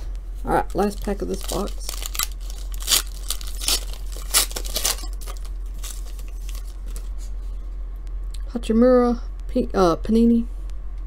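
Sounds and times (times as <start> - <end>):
foil pack tearing: 0.5 - 7.1
wrapper rustling: 0.5 - 7.4.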